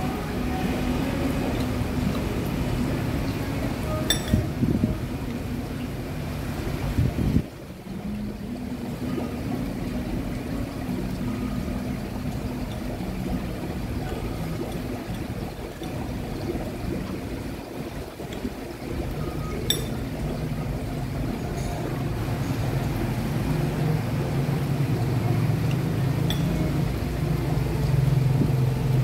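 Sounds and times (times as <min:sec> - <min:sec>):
faint hum: 0:00.0 - 0:29.0.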